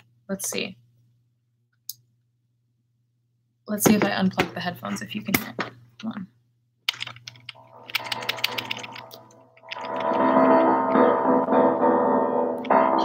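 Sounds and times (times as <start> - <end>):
keyboard clicks: 6.9 - 10.3
electronic keyboard chords: 7.5 - 13.0.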